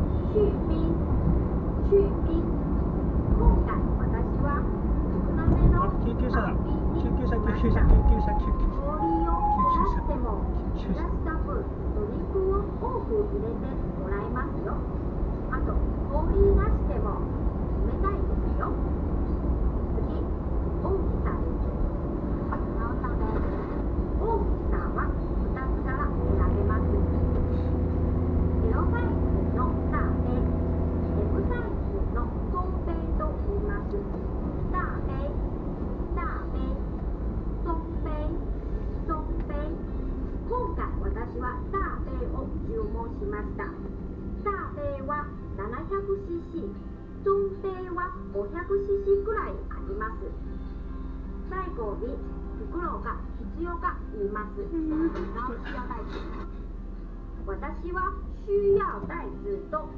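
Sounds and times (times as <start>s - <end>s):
car cabin road rumble: 0.0s - 50.4s, 51.0s - 59.9s.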